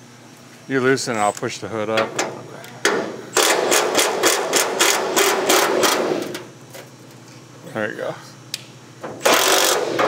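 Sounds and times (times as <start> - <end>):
air ratchet running: 3.3 - 6.4, 9.2 - 10.0.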